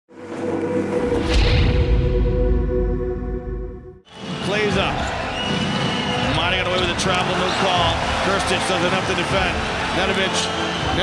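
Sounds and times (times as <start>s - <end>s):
crowd noise and voices: 4.1s - 11.0s.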